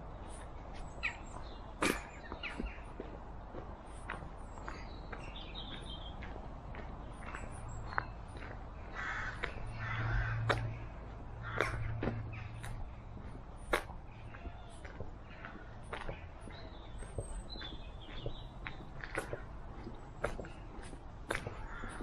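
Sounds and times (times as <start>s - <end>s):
footsteps on woodland path: 0.0s - 22.0s
small birds calling: 0.0s - 22.0s
crow cawing: 8.9s - 10.5s, 11.4s - 12.0s, 21.6s - 22.0s.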